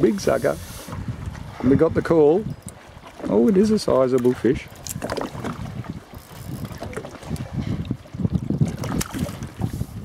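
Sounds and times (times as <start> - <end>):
water lapping against boat: 0.0 - 10.0
wind buffeting microphone: 0.0 - 10.0.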